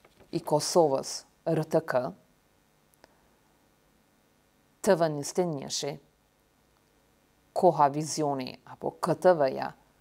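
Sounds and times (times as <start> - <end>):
woman speaking: 0.3 - 2.2, 4.8 - 6.1, 7.5 - 9.9.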